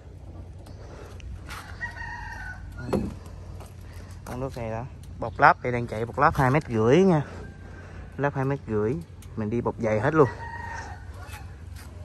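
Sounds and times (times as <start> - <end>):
rooster crowing: 1.5 - 3.0, 10.2 - 11.6.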